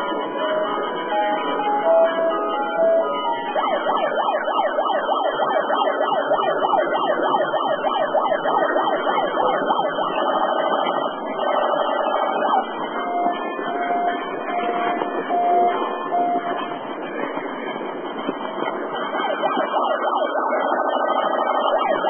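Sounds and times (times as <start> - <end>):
siren yelping: 0.6 - 16.7, 18.7 - 22.0.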